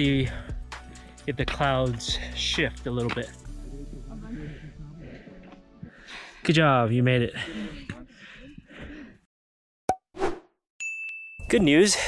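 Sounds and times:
high steady ding: 10.8s - 11.8s.

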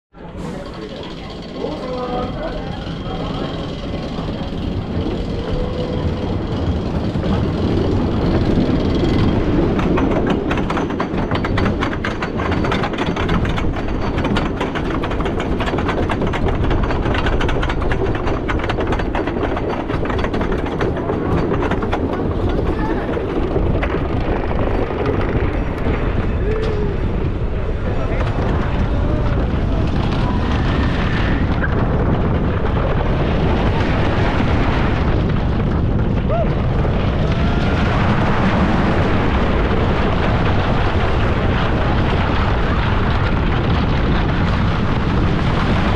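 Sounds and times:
roller coaster train rolling: 0.1s - 45.9s
lift chain rapid clicking: 0.6s - 25.4s.

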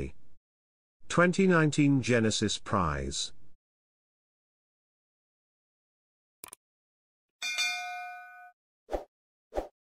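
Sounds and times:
bright bell ding: 7.4s - 8.6s.

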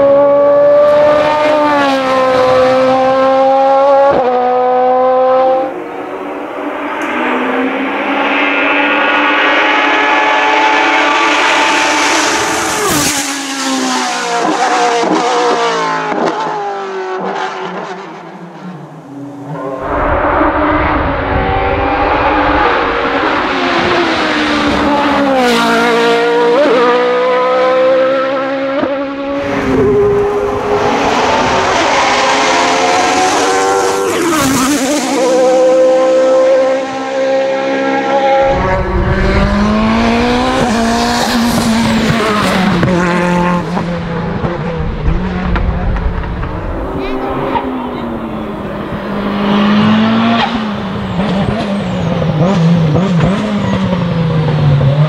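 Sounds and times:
race car engines at full throttle: 0.0s - 55.0s.

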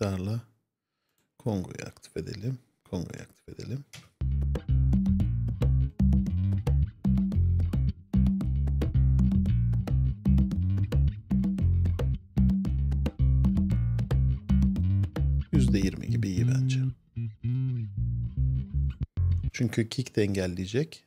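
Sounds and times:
electric bass guitar line: 4.2s - 19.6s
conga and drum hits: 4.3s - 16.0s.

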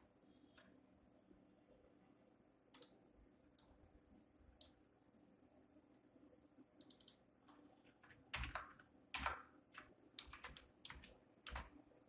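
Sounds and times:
keyboard typing: 6.8s - 11.8s.

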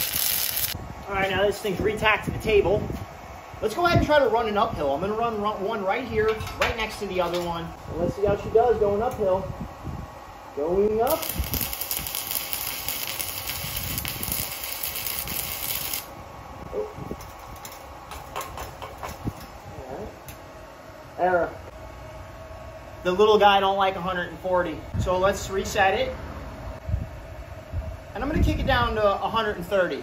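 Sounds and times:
welding arc crackling hiss: 0.0s - 3.0s, 10.8s - 16.2s.

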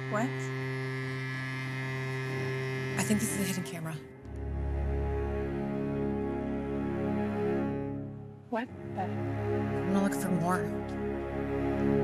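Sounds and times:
low sustained drone: 0.0s - 12.0s.

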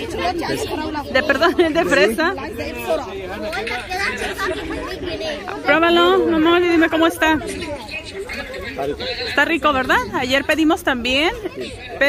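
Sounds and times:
chatter of people talking: 0.0s - 12.0s.

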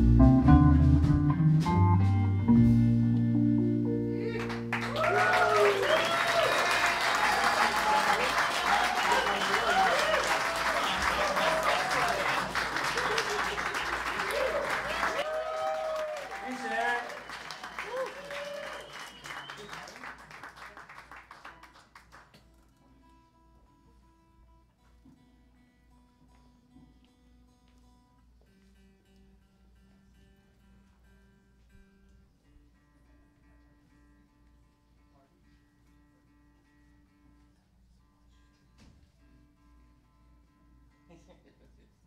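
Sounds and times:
band playing soft chords: 0.0s - 5.9s
audience applause and cheers: 4.3s - 21.6s.

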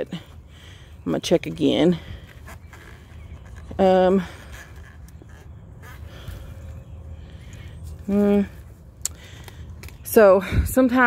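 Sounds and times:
rustling of straw and soil: 1.0s - 11.0s.

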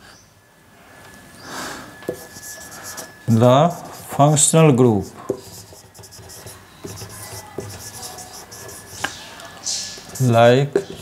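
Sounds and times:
marker scratching on whiteboard: 2.1s - 11.0s.

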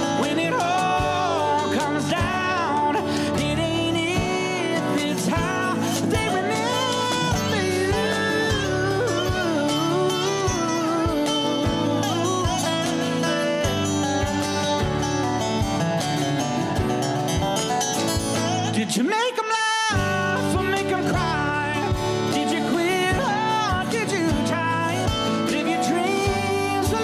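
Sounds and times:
keyboard chords: 0.0s - 18.8s
resonator guitar sliding melody: 0.0s - 19.0s, 19.9s - 27.0s
acoustic guitar: 0.0s - 27.0s
cajon beats: 0.0s - 27.0s.

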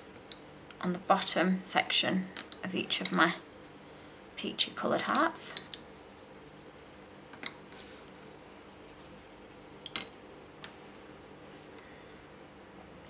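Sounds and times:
paintbrush clinking in water pot: 2.4s - 3.3s, 5.0s - 6.0s.

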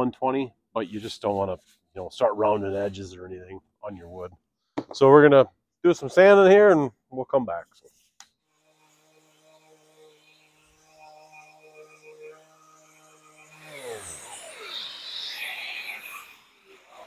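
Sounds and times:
orbital sander running: 8.6s - 17.0s.

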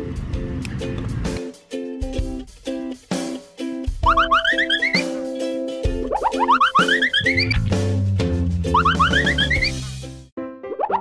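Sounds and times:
background music with bouncy beat: 0.0s - 11.0s.

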